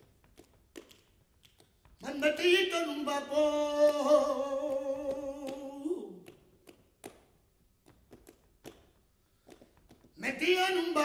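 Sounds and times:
sharp hand claps: 0:00.0 - 0:02.0, 0:03.8 - 0:10.2.

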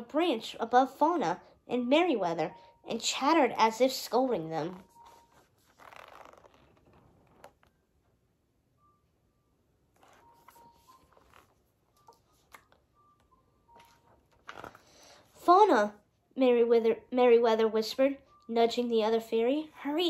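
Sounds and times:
book pages rustling: 0:04.6 - 0:07.8, 0:09.9 - 0:12.8, 0:13.7 - 0:15.4
soft clicks of book handling: 0:05.1 - 0:07.8, 0:10.0 - 0:14.9.

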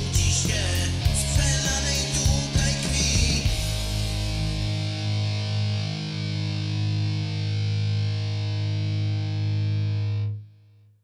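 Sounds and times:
distorted electric guitar chord ringing: 0:00.0 - 0:10.4.

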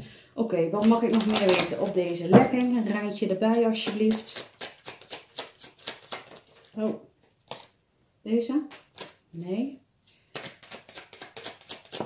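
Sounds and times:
cards shuffling: 0:03.8 - 0:07.8, 0:08.8 - 0:09.2, 0:10.2 - 0:12.0.

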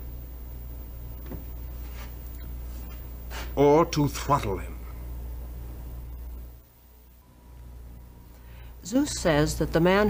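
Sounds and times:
faint hiss: 0:00.0 - 0:09.7
steady low hum: 0:00.0 - 0:10.0.

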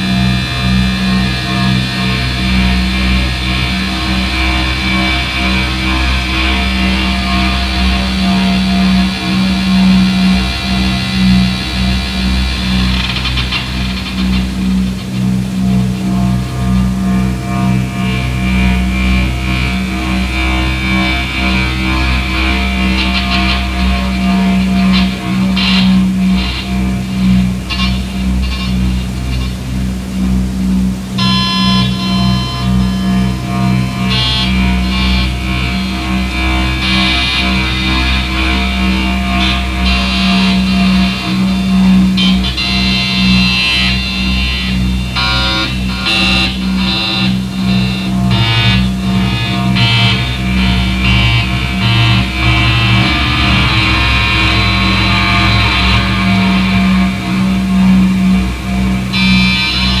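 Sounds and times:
steady low drone: 0:00.0 - 1:00.0.

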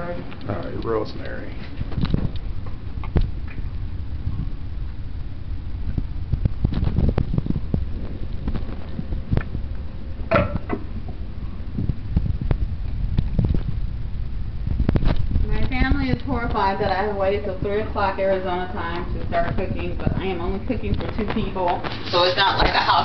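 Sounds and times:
low rumble: 0:00.0 - 0:23.0.

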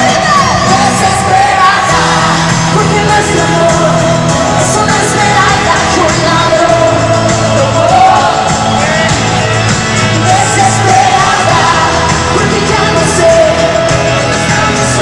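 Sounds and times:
live band playing pop: 0:00.0 - 0:15.0
person singing: 0:00.0 - 0:15.0.

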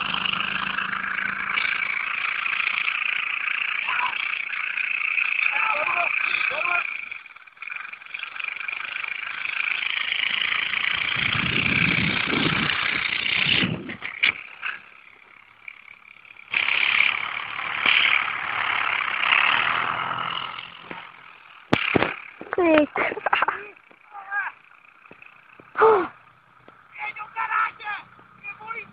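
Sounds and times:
quad bike engine revving: 0:00.0 - 0:28.9.

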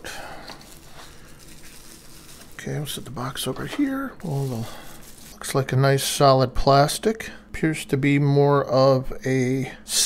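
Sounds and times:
bubble wrap crinkling: 0:00.4 - 0:05.8.

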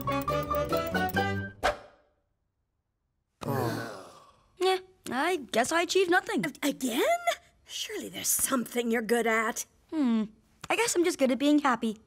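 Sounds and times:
cartoon character sighing: 0:03.4 - 0:04.4.

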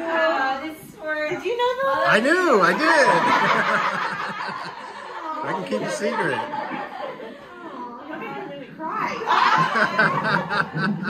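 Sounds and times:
women laughing: 0:02.8 - 0:08.0, 0:09.2 - 0:11.0.

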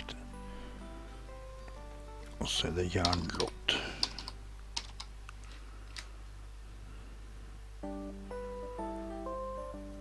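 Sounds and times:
computer keyboard typing: 0:03.0 - 0:05.1.

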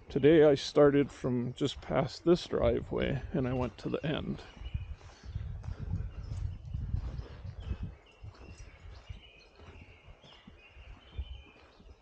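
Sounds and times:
low rumble on microphone: 0:00.0 - 0:11.6
birds chirping and trilling: 0:00.0 - 0:12.0.

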